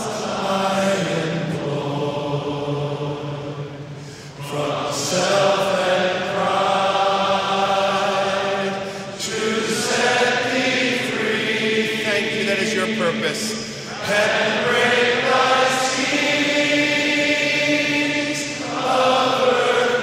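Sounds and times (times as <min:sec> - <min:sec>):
hymn singing: 0:00.0 - 0:20.0.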